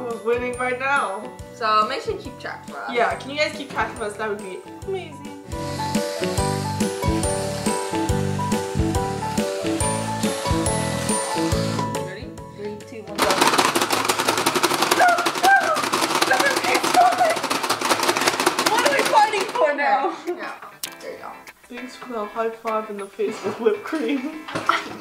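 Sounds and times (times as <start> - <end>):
background music: 0.0 - 25.0
high excited cries: 14.8 - 17.4.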